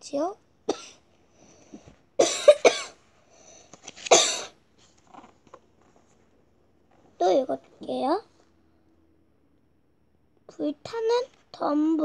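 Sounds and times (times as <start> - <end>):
person coughing: 0.7 - 1.0, 2.2 - 3.0, 4.1 - 4.6
book pages turning: 3.7 - 4.1, 4.8 - 6.3.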